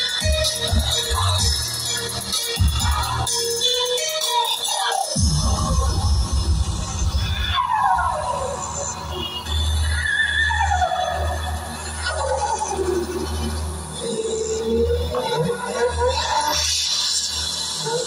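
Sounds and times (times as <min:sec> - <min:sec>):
electronic music with heavy bass: 0:00.0 - 0:18.0.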